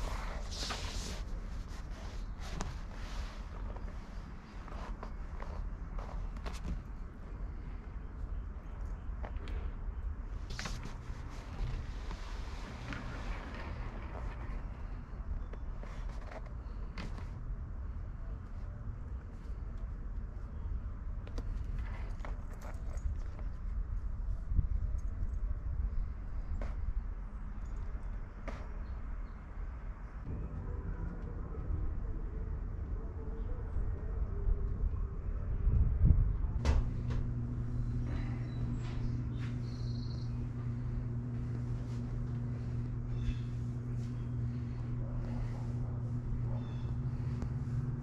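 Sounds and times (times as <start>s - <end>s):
wind rumble on microphone: 16.9s - 29.4s, 30.1s - 39.6s.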